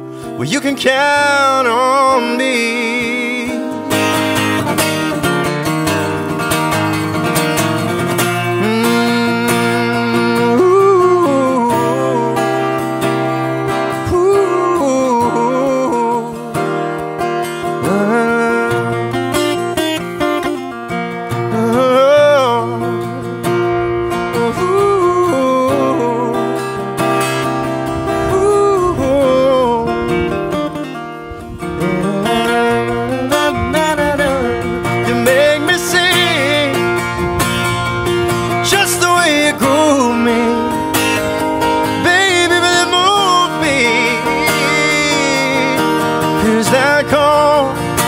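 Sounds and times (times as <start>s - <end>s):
acoustic guitar strumming: 0.0s - 48.0s
man singing wordless runs: 0.2s - 5.1s, 7.6s - 20.5s, 21.3s - 23.3s, 24.0s - 26.9s, 27.9s - 48.0s.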